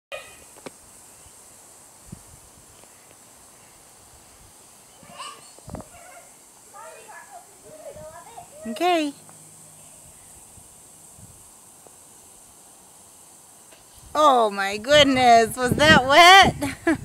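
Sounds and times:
children calling and squealing: 0.1 - 0.5, 4.9 - 10.4
faint steady hiss: 0.1 - 17.0.

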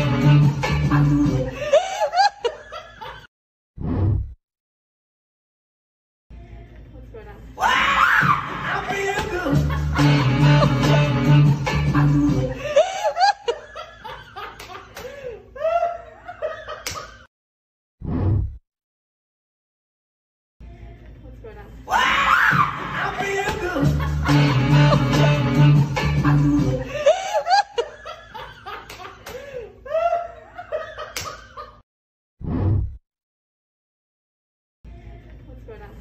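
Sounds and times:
person laughing: 0.9 - 3.3, 8.6 - 11.1, 11.9 - 17.3, 22.8 - 25.3, 26.1 - 31.8
woman giggling: 1.2 - 3.3, 26.2 - 31.8, 35.0 - 36.0.

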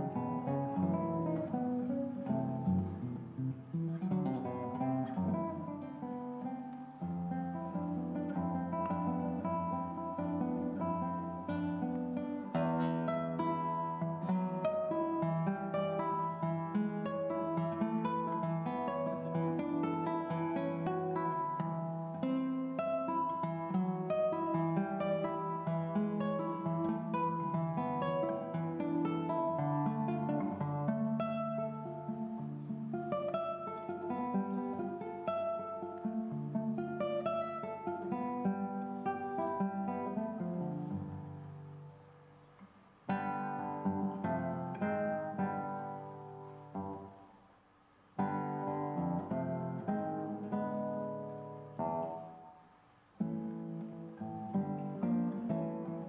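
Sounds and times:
classical guitar playing: 0.0 - 56.0.

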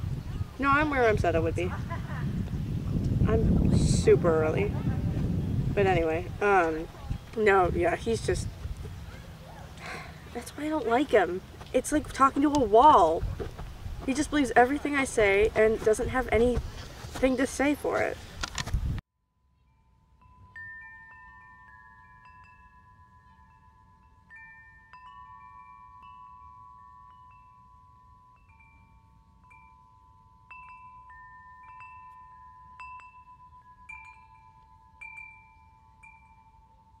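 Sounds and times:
chimes ringing: 19.3 - 37.0.

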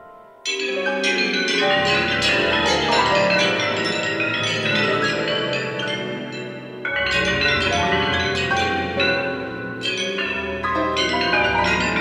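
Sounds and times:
bell-like struck notes: 0.0 - 12.0
chamber ensemble music: 0.0 - 12.0.

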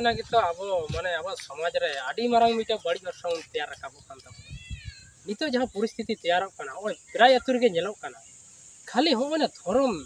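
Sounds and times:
men talking: 0.0 - 4.5, 5.1 - 10.0.

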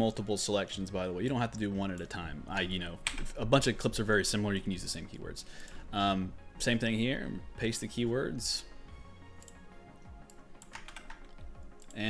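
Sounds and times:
quiet background music: 0.0 - 12.0
computer keyboard clicks: 3.0 - 3.3, 10.2 - 12.0.

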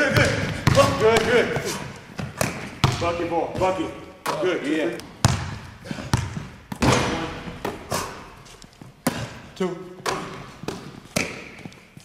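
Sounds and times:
basketball bouncing on gym floor: 0.0 - 12.0.

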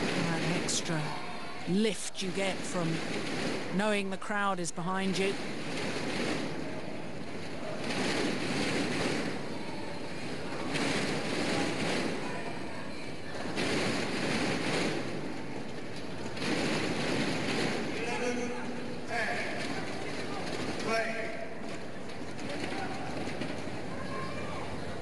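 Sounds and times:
thundersticks beating: 0.0 - 25.0.

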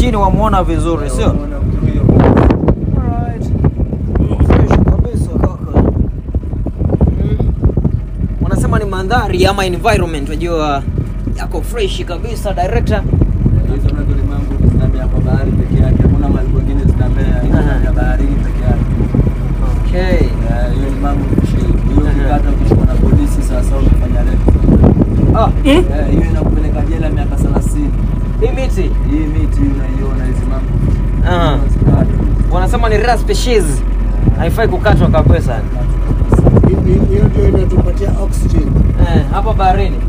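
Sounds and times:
men talking: 0.0 - 40.0
motorboat engine running: 0.0 - 40.0.

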